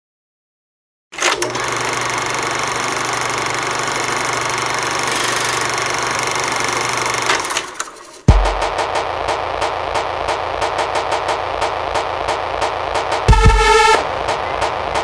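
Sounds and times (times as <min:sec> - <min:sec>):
quick regular beat: 0:08.2 - 0:15.0
heavy bass hit: 0:08.3 - 0:09.3, 0:10.6 - 0:15.0.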